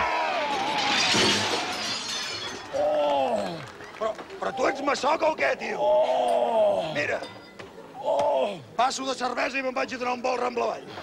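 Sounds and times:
shattering crash: 0:00.2 - 0:02.8.

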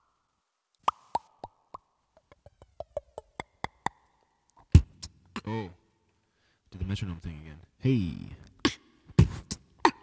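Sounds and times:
beatboxer mouth pops and clicks: 0:00.8 - 0:05.4, 0:08.5 - 0:10.0.

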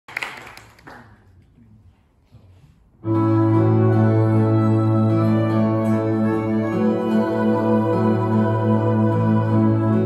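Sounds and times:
audience applause: 0:00.1 - 0:01.2.

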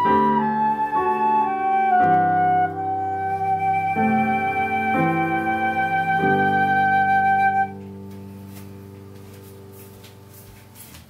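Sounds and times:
flute holding long note: 0:00.0 - 0:08.0
sustained accompaniment chord: 0:00.0 - 0:10.6.

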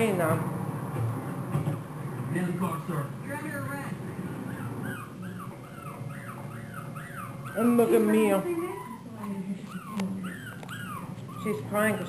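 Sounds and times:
puppy whimpering: 0:04.4 - 0:12.0.

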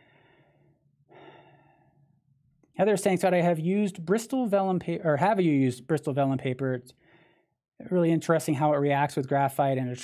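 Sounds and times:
man breathing: 0:00.0 - 0:02.2, 0:07.0 - 0:07.6.

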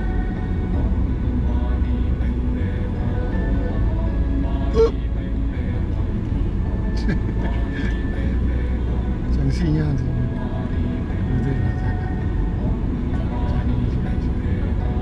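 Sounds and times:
car road and engine rumble: 0:00.0 - 0:15.0
music with a voice: 0:00.0 - 0:15.0.

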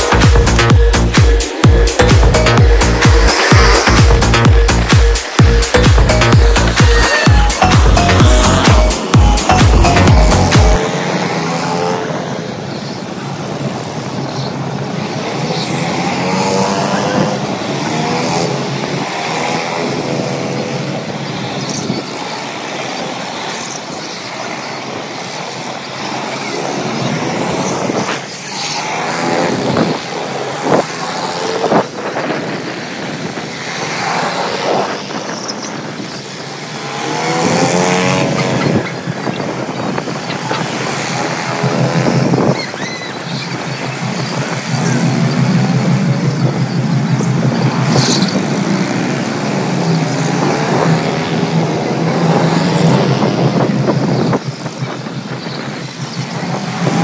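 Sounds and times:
go-kart engines racing: 0:00.0 - 0:57.0.

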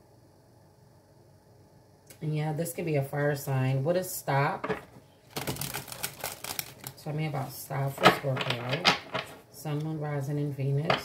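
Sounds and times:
cards being shuffled: 0:04.6 - 0:07.0, 0:07.9 - 0:09.4.

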